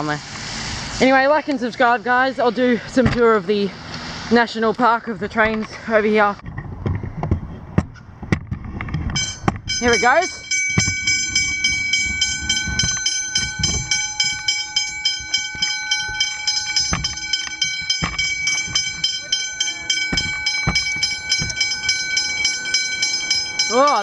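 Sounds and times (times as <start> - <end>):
level crossing bells ringing: 9.2 - 24.0.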